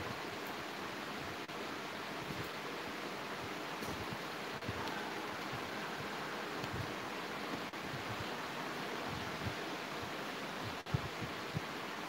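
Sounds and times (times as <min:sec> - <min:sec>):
microphone room hiss: 0:00.0 - 0:12.0.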